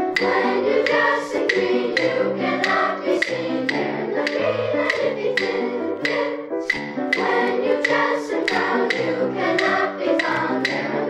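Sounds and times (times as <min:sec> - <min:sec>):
children's chorus singing: 0:00.0 - 0:11.0
instrumental accompaniment: 0:00.0 - 0:11.0.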